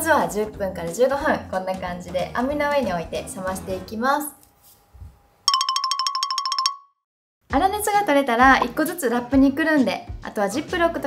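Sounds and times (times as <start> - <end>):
bell ringing rapidly: 5.5 - 6.9.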